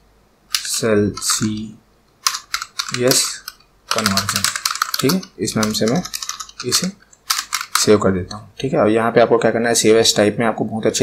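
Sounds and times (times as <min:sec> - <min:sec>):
computer keyboard typing: 0:00.5 - 0:08.4.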